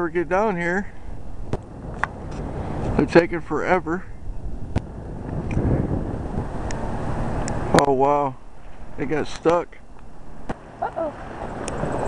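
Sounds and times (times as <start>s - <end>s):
low outdoor rumble: 0.0s - 12.0s
wind buffeting microphone: 0.0s - 12.0s.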